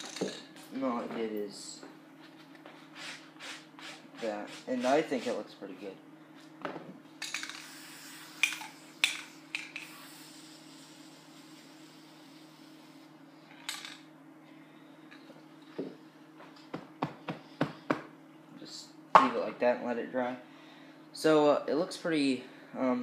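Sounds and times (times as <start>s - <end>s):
steady low hum: 0.0s - 23.0s
spray can hissing: 7.3s - 11.6s.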